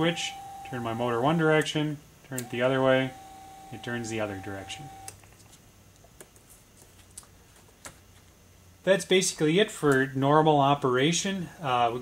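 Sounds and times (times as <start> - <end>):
faint motor whine: 0.0 - 5.8
low steady hum: 0.0 - 12.0.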